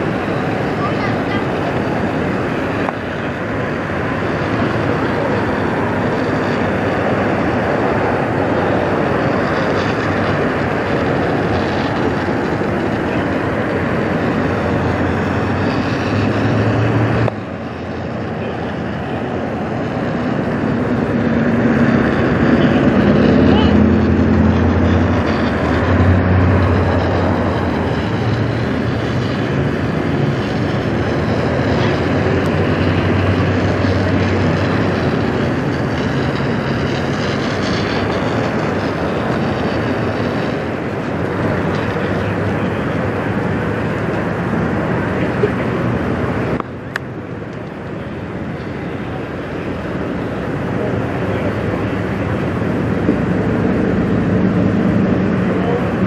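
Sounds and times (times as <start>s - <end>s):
fire truck engine running: 0.0s - 56.0s
water stream rushing: 0.0s - 56.0s.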